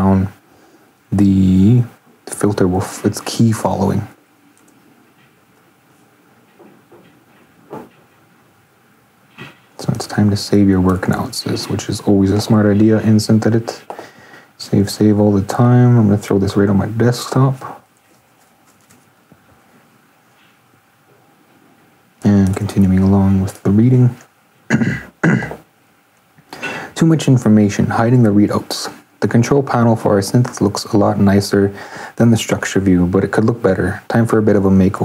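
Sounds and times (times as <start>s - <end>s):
faint soft sounds: 0.0s - 24.4s
faint steady hum: 0.0s - 35.0s.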